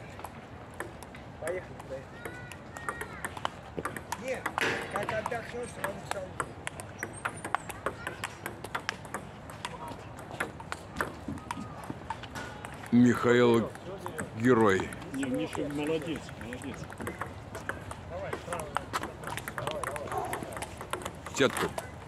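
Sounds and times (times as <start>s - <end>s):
table tennis ball ticking: 0.7s - 22.0s.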